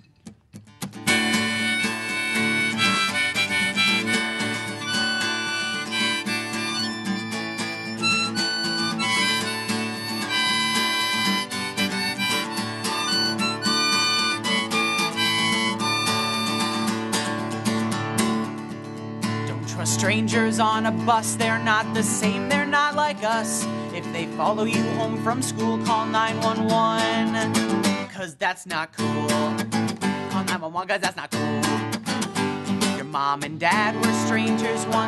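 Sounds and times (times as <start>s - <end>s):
acoustic guitar: 0.0s - 35.0s
harmonica melody: 1.1s - 17.4s.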